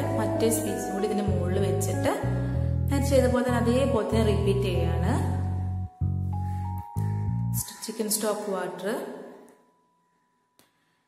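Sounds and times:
voice: 0.0 - 2.3, 2.9 - 5.4, 7.6 - 9.2.

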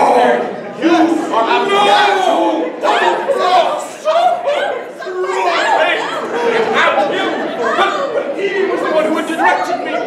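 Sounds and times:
actors talking in echoing hall: 0.0 - 10.0.

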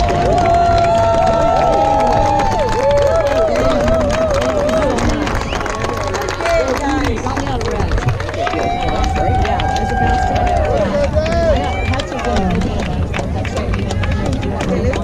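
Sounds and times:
crowd chatter: 0.0 - 15.0
steady low rumble: 0.0 - 15.0.

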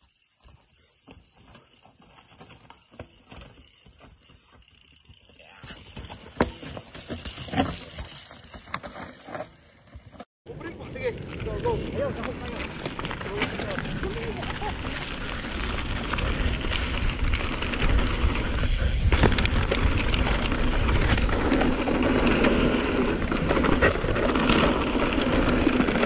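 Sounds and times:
bike tyres and frame rattling over rock: 0.0 - 26.0.

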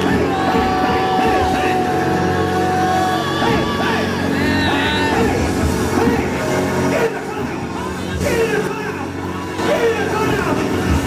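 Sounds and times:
voices singing and calling out: 0.0 - 10.8.

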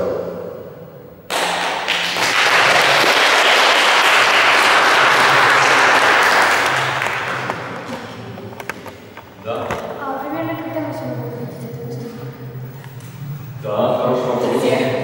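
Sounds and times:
audience applauding: 1.3 - 8.3.

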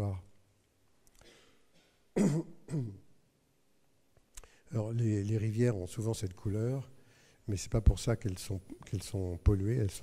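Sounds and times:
man clearing his throat: 1.3 - 3.1.

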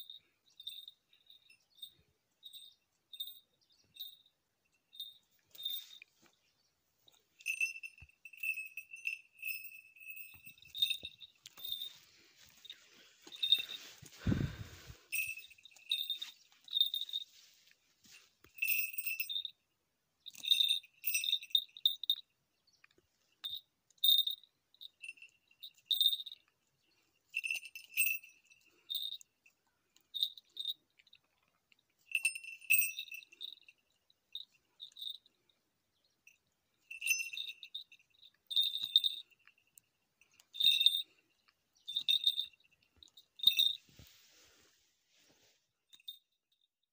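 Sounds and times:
small bell jingling: 0.0 - 44.3, 45.8 - 46.9.

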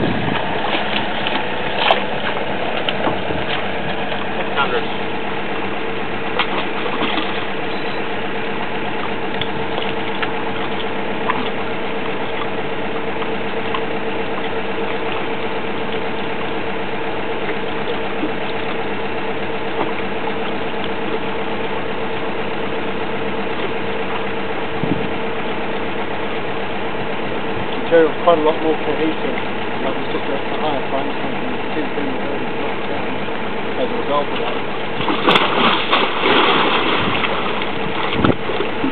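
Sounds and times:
drilling rig engine droning: 0.0 - 38.9.

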